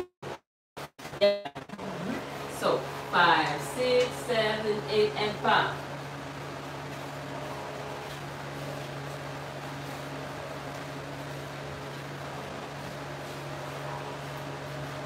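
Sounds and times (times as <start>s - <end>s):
low hum: 1.1s - 15.0s.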